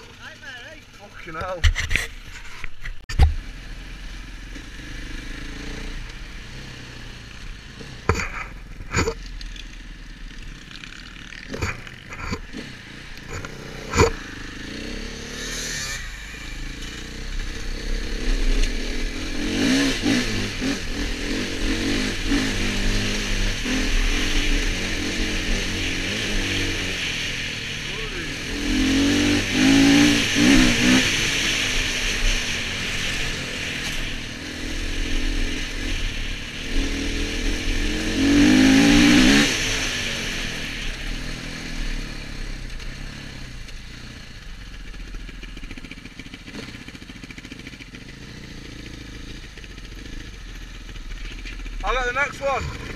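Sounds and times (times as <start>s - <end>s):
dirt bike engine accelerating: 0.0s - 52.9s.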